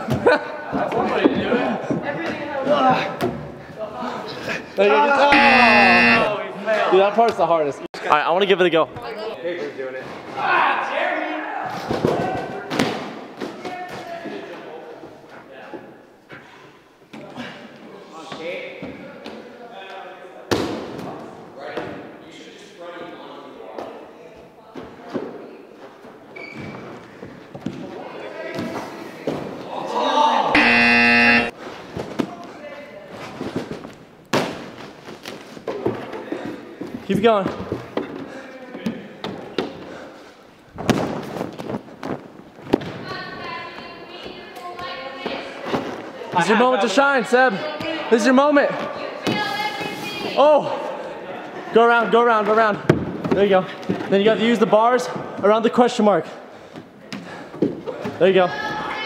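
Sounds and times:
buzzer-like tone: 5.3 - 6.3, 30.6 - 31.5.

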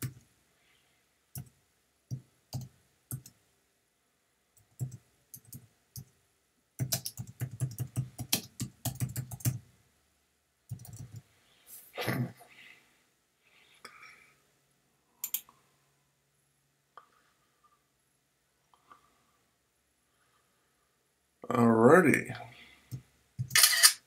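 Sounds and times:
typing on computer keyboard: 2.1 - 3.4, 4.6 - 6.1, 6.8 - 9.6, 10.7 - 11.2, 15.2 - 15.5.

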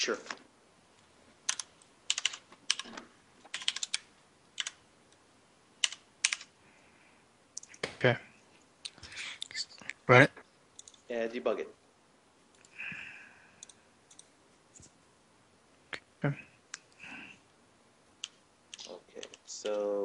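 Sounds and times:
keyboard keystrokes: 1.5 - 4.8.

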